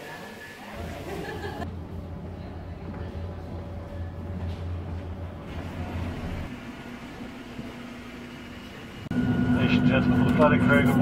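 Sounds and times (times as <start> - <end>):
machinery humming: 0.8 - 11.0.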